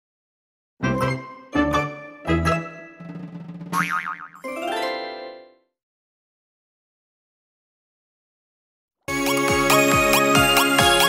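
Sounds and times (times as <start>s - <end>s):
cartoon children's music jingle: 0.8s - 5.7s
boing sound effect: 3.7s - 4.5s.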